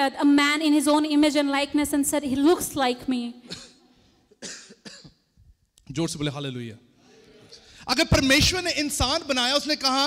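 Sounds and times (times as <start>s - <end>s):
man coughing: 3.4s - 5.3s.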